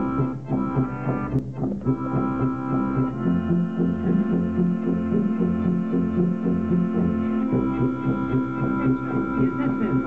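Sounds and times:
electric keyboard chord droning: 0.0s - 10.0s
pulsing bass notes: 0.0s - 10.0s.

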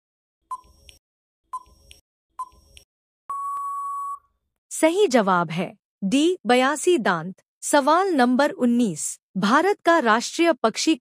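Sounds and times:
long steady beep: 3.3s - 4.3s
short beep: 3.3s - 4.3s.

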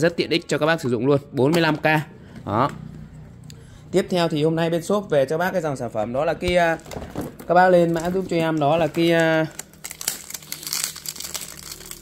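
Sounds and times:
packaging crinkling and rustling: 6.5s - 12.0s.

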